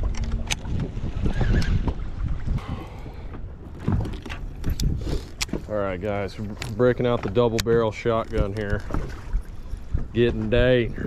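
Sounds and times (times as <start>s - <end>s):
waves lapping at boat: 0.0s - 11.0s
wind buffeting microphone: 0.0s - 11.0s.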